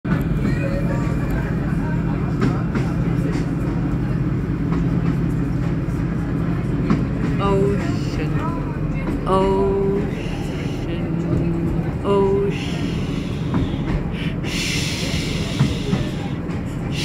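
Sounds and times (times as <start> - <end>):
low mechanical drone: 0.1 - 17.0
person's voice: 7.4 - 8.6, 9.2 - 16.1.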